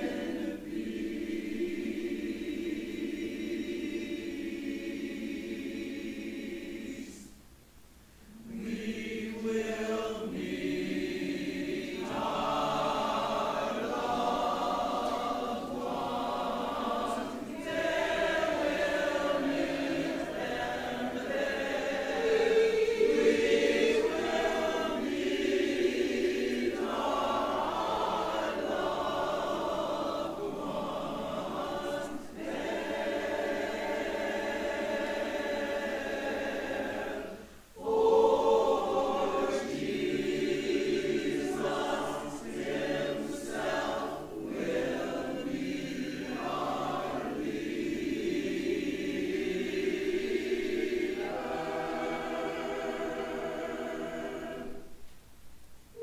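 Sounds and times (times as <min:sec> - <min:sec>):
choir singing in harmony: 0:00.0 - 0:07.5, 0:08.2 - 0:55.1.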